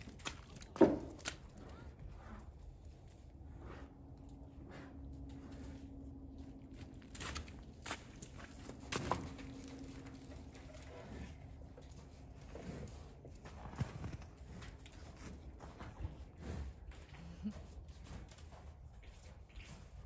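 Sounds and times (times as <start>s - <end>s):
low rumble: 2.0s - 17.5s
bison footfalls: 6.7s - 10.2s.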